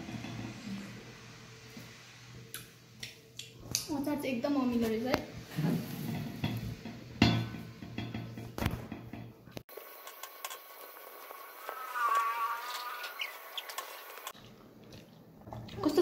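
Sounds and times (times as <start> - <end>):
warbling tone: 11.2 - 14.3.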